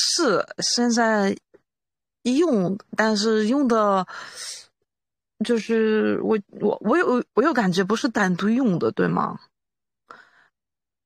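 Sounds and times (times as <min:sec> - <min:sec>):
faint breath: 0:04.1 - 0:04.7, 0:10.1 - 0:10.6.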